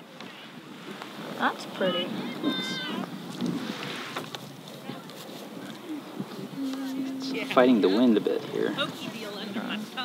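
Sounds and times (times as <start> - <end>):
wind blowing across microphone: 0.0 - 10.0.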